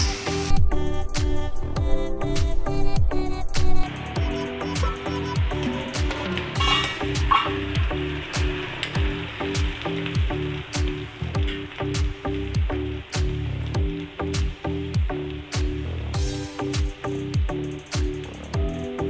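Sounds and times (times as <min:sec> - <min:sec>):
onions sizzling in oil: 0:00.0 - 0:01.2, 0:03.9 - 0:19.0
background music with steady beat: 0:00.0 - 0:19.0.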